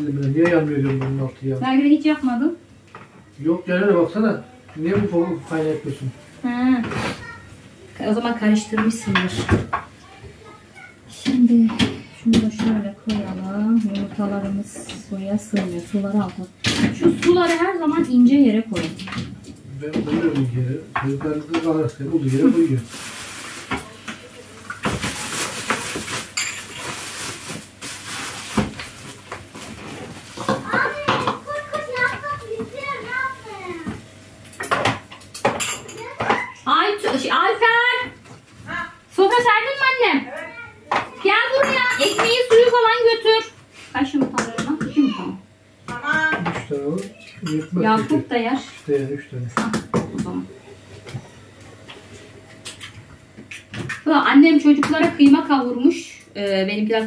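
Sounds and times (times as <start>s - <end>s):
people talking: 4.9s - 7.4s, 8.0s - 19.2s, 30.5s - 33.9s, 36.0s - 50.5s, 54.1s - 57.0s
dishes and utensils knocking: 11.2s - 22.0s, 30.3s - 32.8s, 33.8s - 37.4s, 40.9s - 43.0s, 45.8s - 48.3s, 54.7s - 55.5s.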